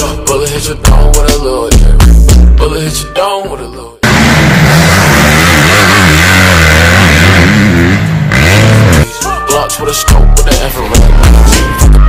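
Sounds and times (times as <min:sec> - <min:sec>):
dirt bike engine revving: 0:04.0 - 0:09.1.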